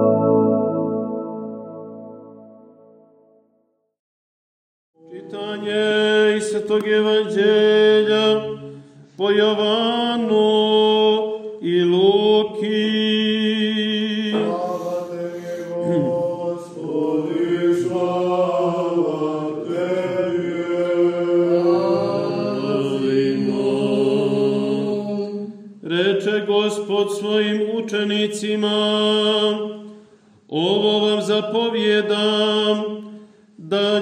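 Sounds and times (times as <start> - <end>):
low drone note: 0.0 - 2.9
chant melody: 0.0 - 3.3, 5.0 - 29.9.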